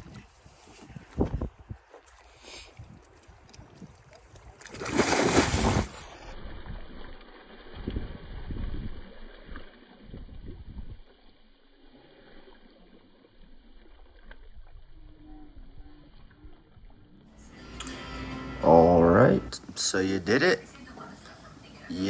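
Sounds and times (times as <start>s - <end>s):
sloshing and splashing water: 1.8s - 17.4s
big splash into lake: 4.6s - 9.6s.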